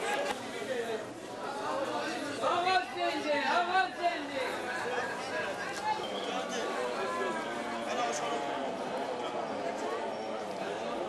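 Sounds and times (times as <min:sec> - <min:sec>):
people talking at once: 0:00.0 - 0:11.0.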